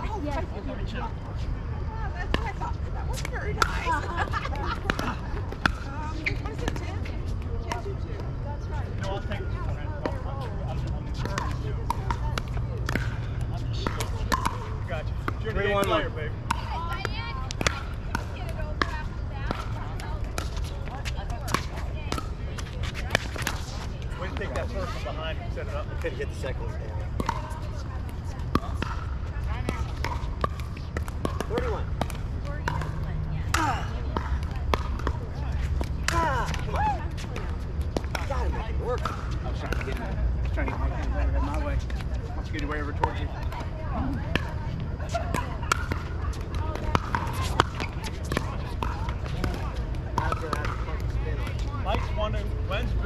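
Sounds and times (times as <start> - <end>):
people talking: 0.0 - 53.0
ball bouncing on hard court: 2.2 - 7.0, 9.0 - 24.7, 27.0 - 52.2
paddles hitting pickleball: 2.2 - 8.3, 9.0 - 52.2.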